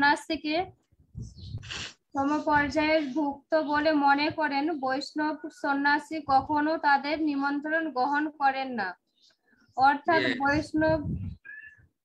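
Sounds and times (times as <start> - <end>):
person speaking over video call: 0.0 - 9.0, 9.8 - 11.8.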